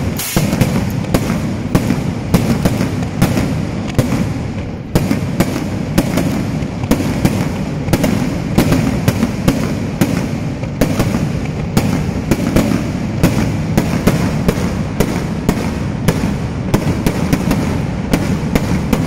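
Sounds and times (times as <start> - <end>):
firecrackers crackling and banging: 0.0 - 19.0.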